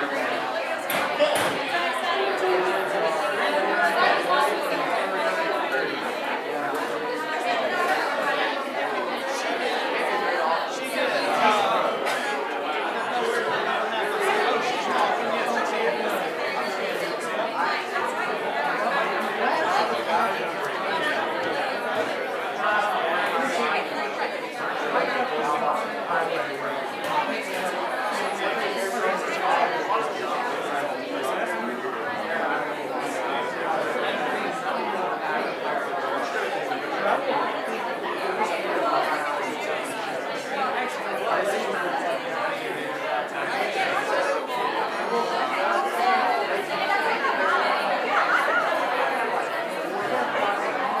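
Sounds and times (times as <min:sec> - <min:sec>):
hubbub of voices: 0:00.0 - 0:51.0.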